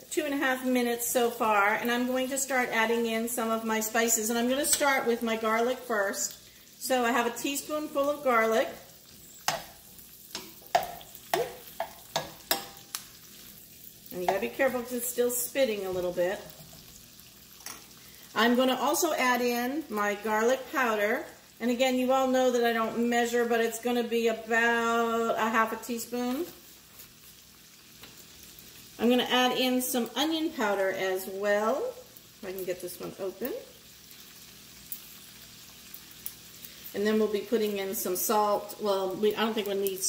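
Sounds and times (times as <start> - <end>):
beans sizzling and spitting in grease: 0.0 - 40.0
grease sizzling and spitting: 5.9 - 19.0, 33.8 - 37.1.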